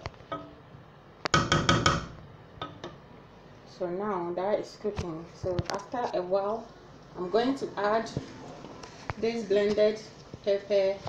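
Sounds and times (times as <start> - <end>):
wooden spoon knocking metal pot: 1.3 - 3.0.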